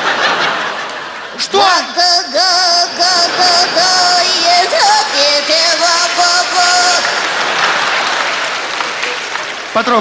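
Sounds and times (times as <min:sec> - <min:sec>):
audience applauding: 0:03.0 - 0:10.0.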